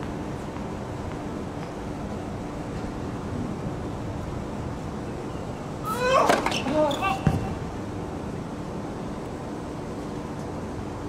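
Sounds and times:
ball thud: 7.2s - 7.6s.

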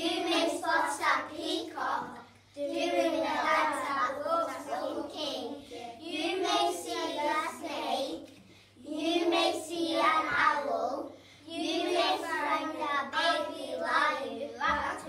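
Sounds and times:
children chanting in unison: 0.0s - 7.8s, 8.8s - 15.0s.

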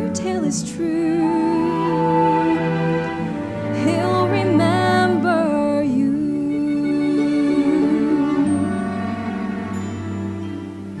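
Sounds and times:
soft musical accompaniment: 0.0s - 11.0s.

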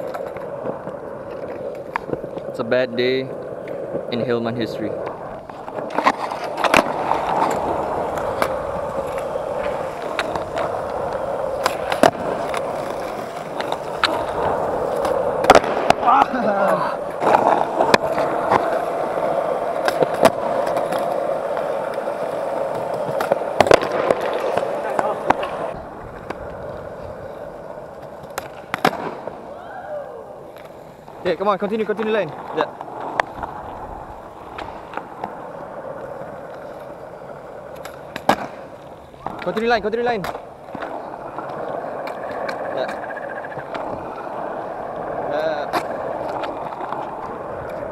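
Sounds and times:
skateboard clacking on ground: 0.0s - 47.9s
skateboard wheels rolling on concrete: 0.0s - 47.9s.

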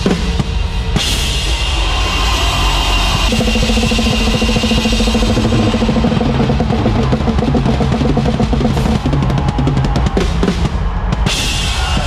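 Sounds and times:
cymbal wash: 3.1s - 8.3s
sustained keys and bass: 3.3s - 9.0s
worship band playing: 3.3s - 10.6s.

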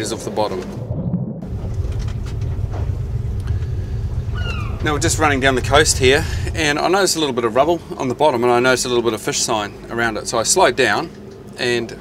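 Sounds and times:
boat motor running: 1.4s - 7.8s.

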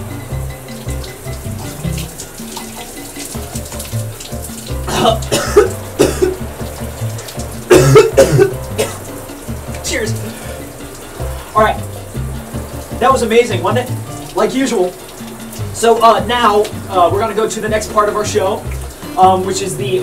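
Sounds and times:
background music with bass: 0.0s - 20.0s
running water: 0.0s - 20.0s
man coughing and sputtering: 4.9s - 6.4s, 7.7s - 9.0s.

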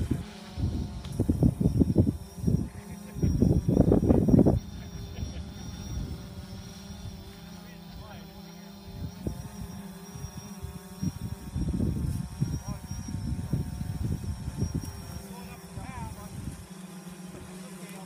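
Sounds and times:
wind buffeting microphone: 0.0s - 7.3s, 8.9s - 16.6s
distant engine droning: 0.0s - 18.0s.

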